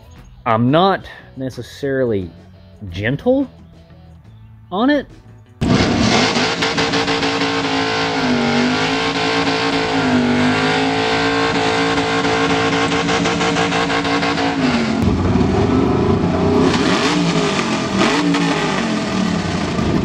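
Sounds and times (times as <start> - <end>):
car engine revving: 5.6 - 20.0.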